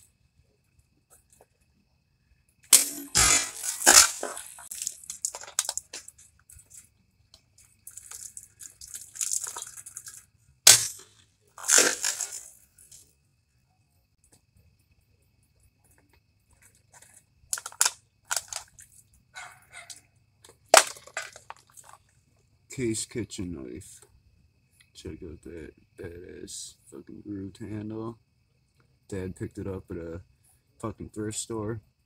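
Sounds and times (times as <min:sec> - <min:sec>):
knife slashing plastic bottle: 0:02.8 - 0:05.8, 0:10.7 - 0:12.4.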